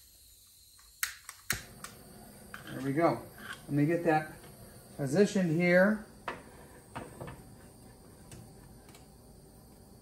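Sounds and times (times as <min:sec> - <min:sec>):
torch flame hissing: 0:00.0 - 0:10.0
lighter clicking: 0:00.6 - 0:03.7.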